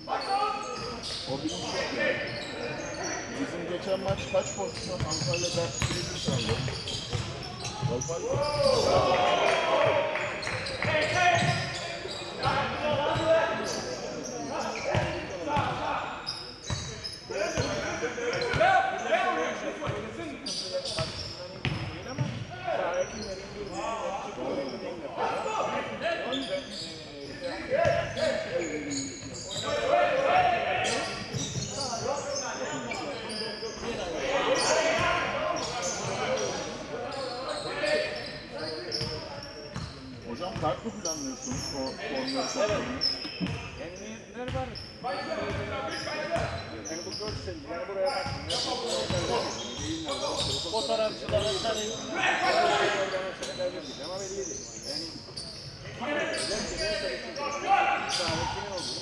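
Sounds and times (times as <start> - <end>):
players calling out: 0.0 - 43.6.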